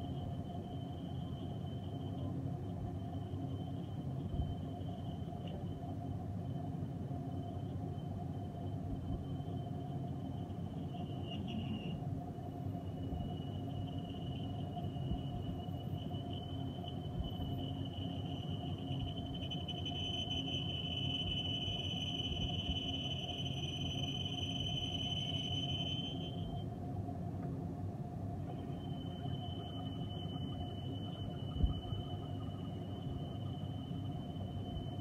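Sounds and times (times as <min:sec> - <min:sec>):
high whistle from cutting tool: 0:07.3 - 0:26.7, 0:28.5 - 0:35.0.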